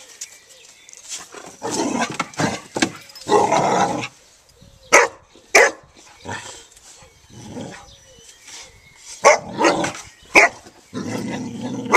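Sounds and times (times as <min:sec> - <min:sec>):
dog barking: 0:04.9 - 0:05.9, 0:09.2 - 0:10.6.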